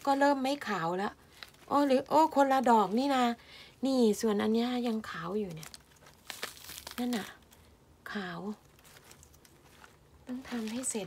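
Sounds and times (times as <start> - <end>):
mushroom crackling and tearing: 0.0 - 3.4, 4.1 - 11.0.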